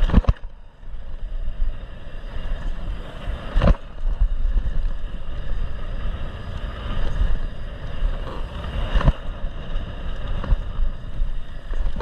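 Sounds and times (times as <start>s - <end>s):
bike tyres on dirt: 0.0s - 12.0s
wind rumble on microphone: 0.0s - 12.0s.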